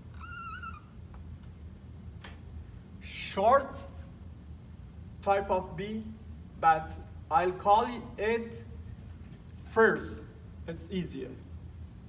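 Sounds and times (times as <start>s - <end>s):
marker squeaking on whiteboard: 0.0s - 1.2s.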